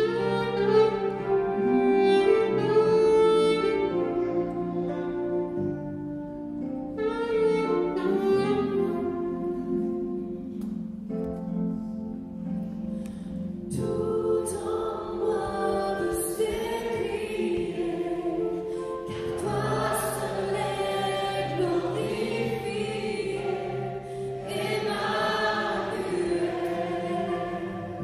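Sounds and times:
electric piano: 0:00.0 - 0:28.0
group singing: 0:13.9 - 0:28.0.

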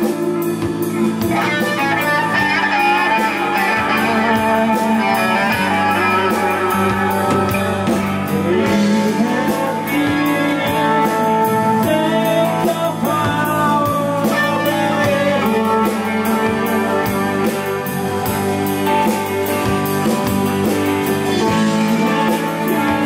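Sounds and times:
rock band playing live: 0:00.0 - 0:23.0.

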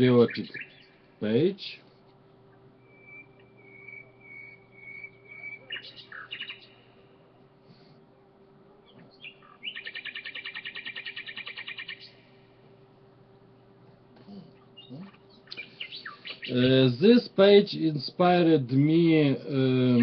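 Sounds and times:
bird chirping and singing: 0:00.1 - 0:01.1, 0:02.8 - 0:06.9, 0:08.9 - 0:12.3, 0:14.6 - 0:16.8.

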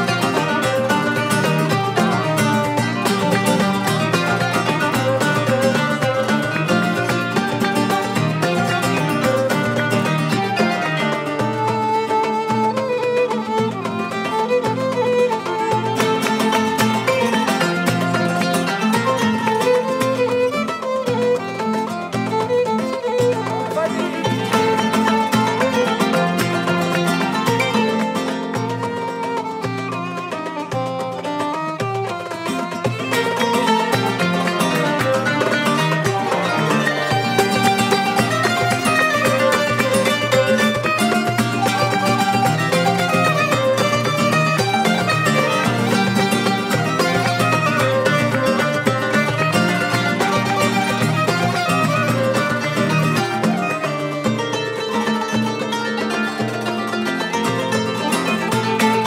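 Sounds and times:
flute: 0:00.0 - 0:30.6, 0:31.2 - 0:59.0
darbuka drum: 0:00.0 - 0:59.0
flamenco guitar strummed and plucked: 0:00.0 - 0:59.0
violin: 0:00.0 - 0:59.0.

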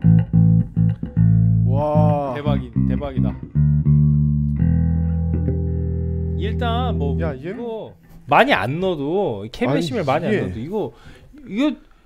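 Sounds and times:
electric bass notes ringing: 0:00.0 - 0:08.0.

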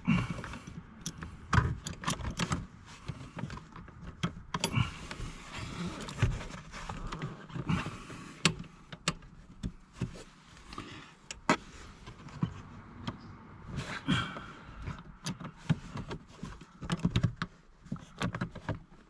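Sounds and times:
rustling of hands and tool: 0:00.1 - 0:19.0.

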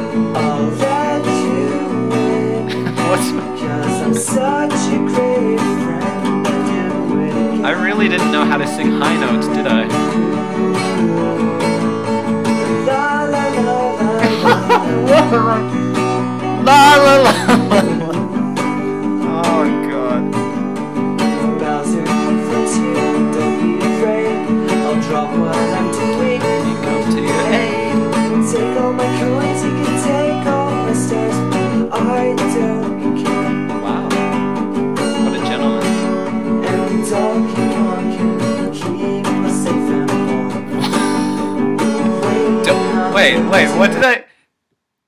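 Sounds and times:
man singing: 0:00.0 - 0:11.8, 0:12.5 - 0:15.8, 0:16.4 - 0:20.3, 0:21.3 - 0:34.4, 0:35.2 - 0:44.2
acoustic guitar strumming: 0:00.0 - 0:44.2.

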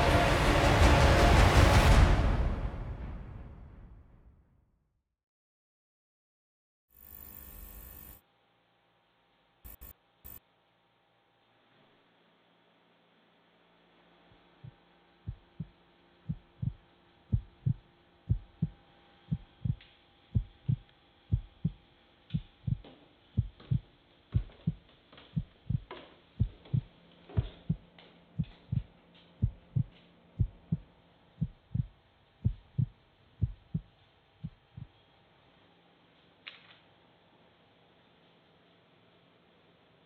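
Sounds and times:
faint steady hum: 0:14.1 - 0:24.8, 0:28.4 - 0:36.1
heartbeat thumps: 0:14.6 - 0:15.7, 0:16.3 - 0:19.8, 0:20.4 - 0:24.8, 0:25.4 - 0:27.8, 0:28.4 - 0:35.0.

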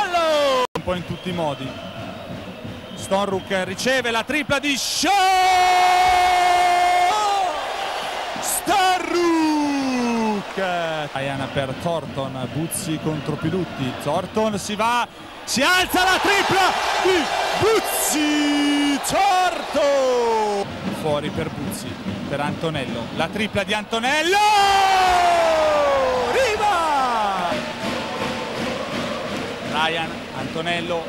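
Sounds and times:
man shouting excitedly: 0:00.0 - 0:00.7, 0:04.7 - 0:07.6, 0:08.4 - 0:10.4, 0:15.5 - 0:20.6, 0:24.0 - 0:27.6.

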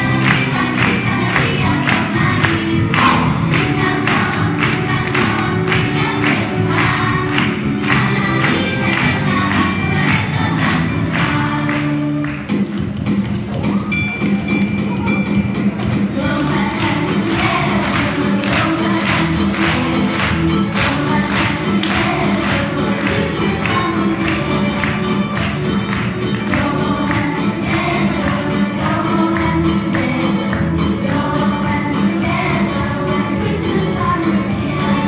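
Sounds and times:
children singing in chorus: 0:00.0 - 0:12.2.

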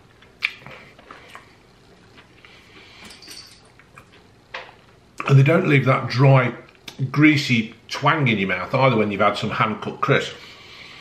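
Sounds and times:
man chewing crisps: 0:00.0 - 0:03.0.

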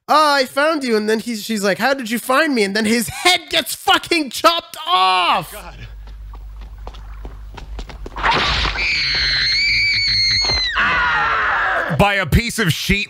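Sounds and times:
woman screaming: 0:08.8 - 0:11.9.

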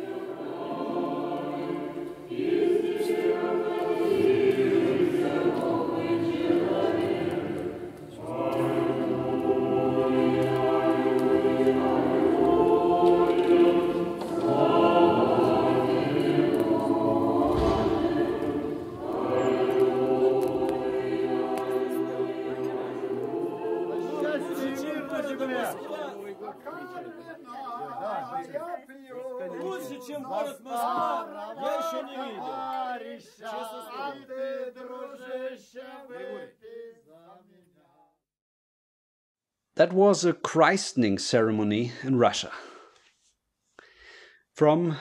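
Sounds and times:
choir singing unaccompanied chant: 0:00.0 - 0:37.7.

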